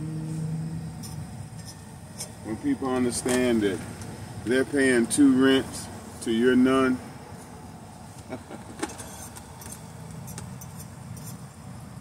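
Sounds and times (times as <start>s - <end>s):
low background rumble: 0.0s - 12.0s
handling clicks and ticks: 9.0s - 11.4s.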